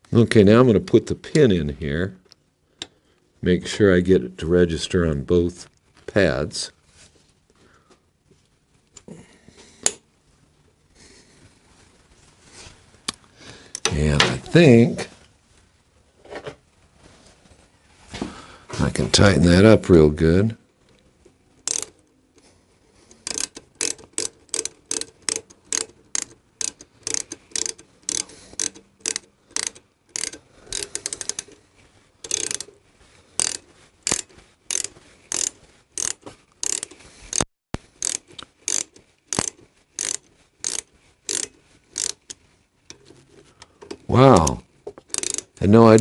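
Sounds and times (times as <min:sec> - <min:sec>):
hand ratchet clicking: 0:21.6 - 0:22.1, 0:23.1 - 0:31.6, 0:32.2 - 0:32.8, 0:33.4 - 0:43.1, 0:43.8 - 0:46.0.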